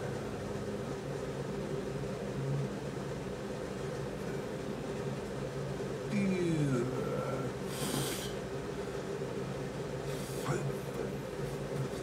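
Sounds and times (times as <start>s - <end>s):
steady low hum: 0.0s - 12.0s
breathy hiss: 7.6s - 8.4s.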